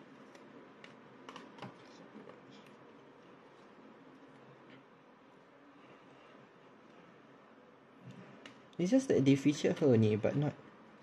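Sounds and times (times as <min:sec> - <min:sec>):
low room noise: 0:00.0 - 0:11.0
fingers tapping book pages: 0:00.2 - 0:02.8.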